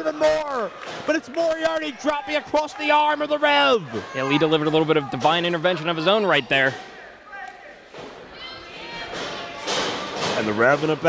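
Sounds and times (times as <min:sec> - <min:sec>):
faint crowd voices: 0:00.0 - 0:11.0.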